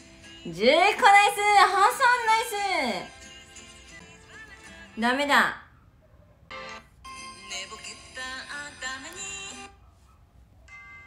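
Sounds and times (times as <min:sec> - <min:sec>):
person singing over music: 0:03.8 - 0:05.0, 0:07.2 - 0:09.8.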